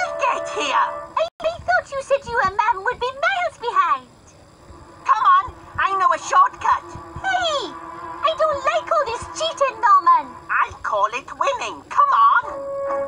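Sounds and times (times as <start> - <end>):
background music with held notes: 0.0 - 1.2, 12.1 - 13.0
high sliding voices: 3.5 - 12.6.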